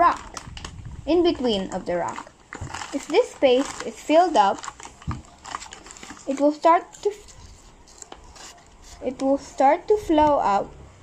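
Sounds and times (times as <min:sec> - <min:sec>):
fingers rubbing paper: 0:02.8 - 0:09.4.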